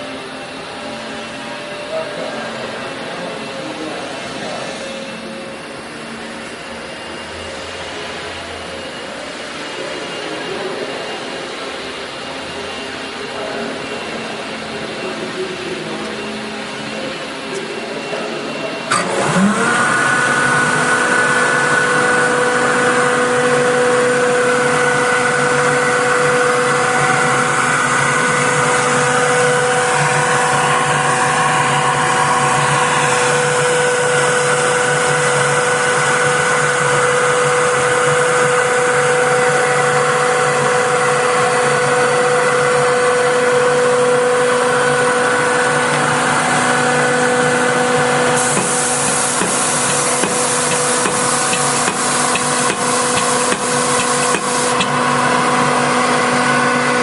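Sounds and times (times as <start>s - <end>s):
blower whine over rushing air: 0.0s - 57.0s
steady hum: 0.0s - 57.0s.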